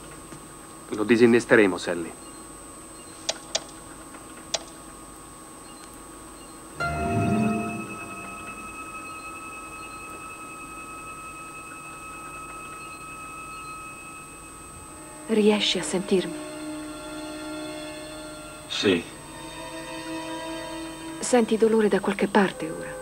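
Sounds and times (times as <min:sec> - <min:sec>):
low swell: 0:06.8 - 0:10.1
electronic ringing tone: 0:06.8 - 0:14.8.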